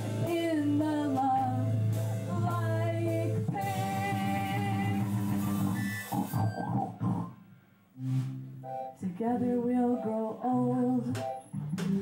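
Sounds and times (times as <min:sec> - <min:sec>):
person singing: 0:00.0 - 0:05.4, 0:09.0 - 0:12.0
live band playing: 0:00.0 - 0:07.3, 0:08.0 - 0:09.0.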